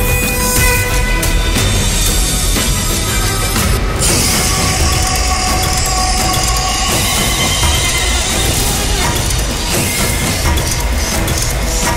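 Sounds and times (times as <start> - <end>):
dramatic background score: 0.0 - 11.9.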